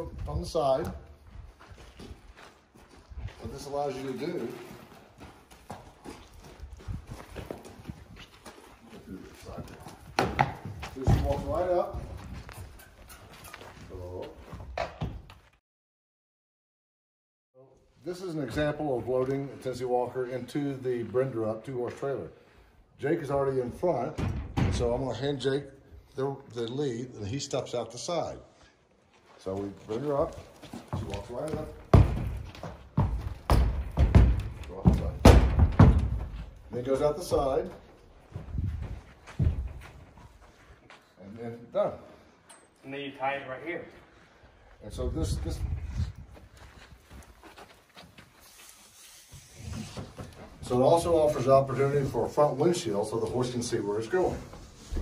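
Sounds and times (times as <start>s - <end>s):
horse hooves stepping: 0.0s - 15.6s, 29.0s - 41.1s, 45.0s - 55.0s
horse hooves thudding on trailer: 9.4s - 12.8s, 30.6s - 37.5s, 38.5s - 40.0s.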